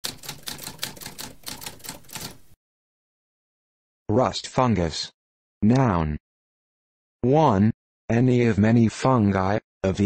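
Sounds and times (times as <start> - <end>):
typewriter keys clacking: 0.0 - 2.4.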